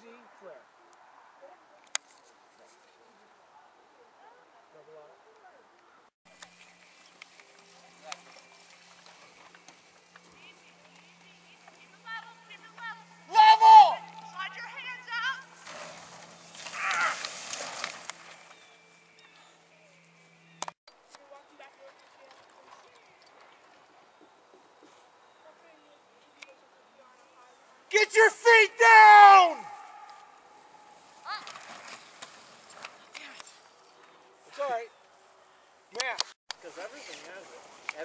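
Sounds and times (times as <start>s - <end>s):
loud high voice calling out: 12.1s - 15.4s.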